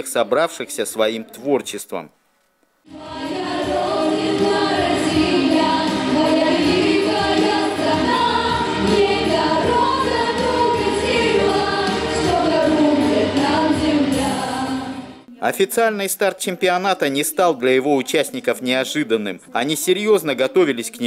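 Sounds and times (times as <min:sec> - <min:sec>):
women singing together: 0:02.9 - 0:15.4.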